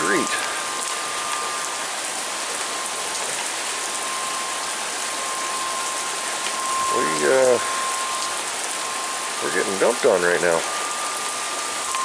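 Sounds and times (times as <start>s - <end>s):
heavy rain splashing: 0.0s - 12.0s.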